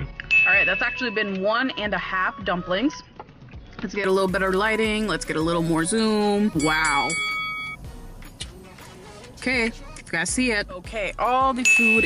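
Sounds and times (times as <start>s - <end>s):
metal chime ringing tone: 0.3s - 1.3s, 6.6s - 7.9s, 11.6s - 12.0s.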